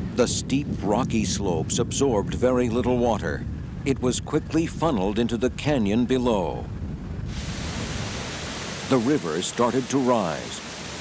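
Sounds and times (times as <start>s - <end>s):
rushing floodwater: 7.3s - 11.0s.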